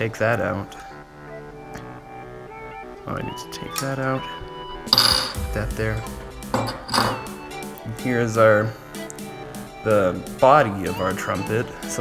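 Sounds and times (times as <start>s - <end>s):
background music with held notes: 0.0s - 12.0s
metal trumpet parts knocking: 4.9s - 5.4s, 6.5s - 7.4s.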